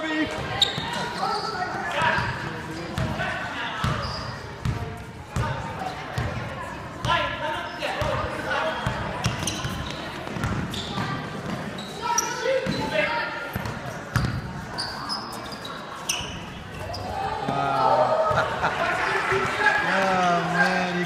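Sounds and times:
sneaker squeaks: 0:00.1 - 0:06.4, 0:07.0 - 0:17.6.

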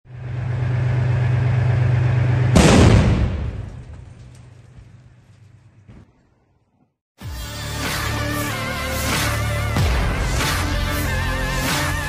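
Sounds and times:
tank diesel engine running: 0:00.0 - 0:02.8
tank gun blast: 0:02.5 - 0:04.2.

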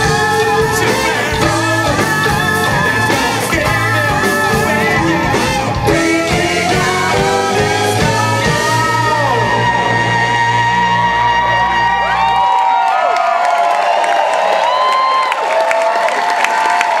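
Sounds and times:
funk band playing: 0:00.0 - 0:12.3
crowd cheering and whooping: 0:00.0 - 0:17.0.

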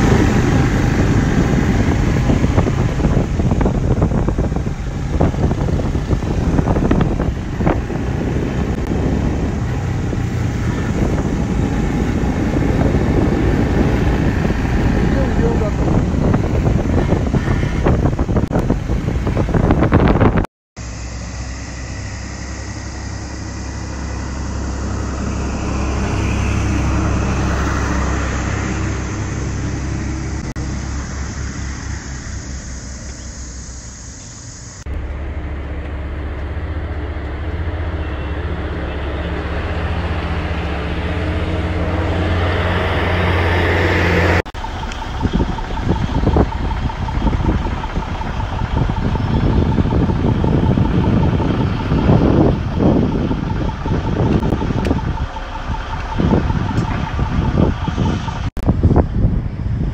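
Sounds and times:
motorcycle engine running: 0:00.0 - 0:27.4, 0:44.6 - 0:59.9
wind rushing over microphone: 0:00.0 - 0:35.4, 0:36.2 - 0:59.9
outdoor background noise: 0:00.0 - 0:59.9.

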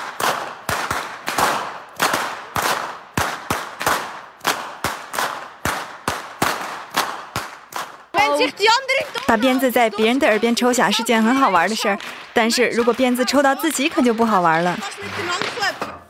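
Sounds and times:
whips cracking: 0:00.0 - 0:08.1.

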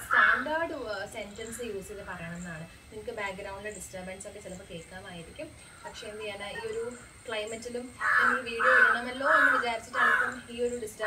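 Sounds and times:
crow cawing: 0:00.0 - 0:00.6, 0:07.9 - 0:10.6.

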